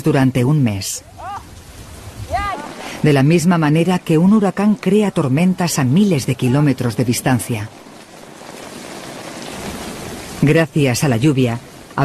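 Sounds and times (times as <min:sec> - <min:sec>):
heavy rain hissing: 0:01.0 - 0:12.0.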